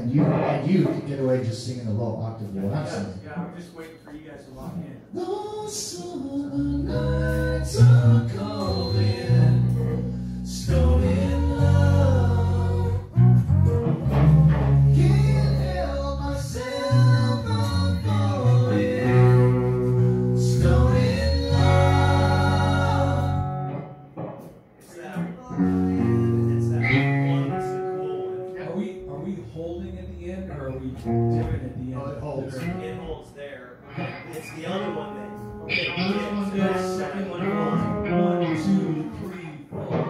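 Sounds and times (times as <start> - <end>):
guitar accompaniment: 0.0 - 40.0
male voices singing in harmony: 5.2 - 13.2, 14.8 - 23.7.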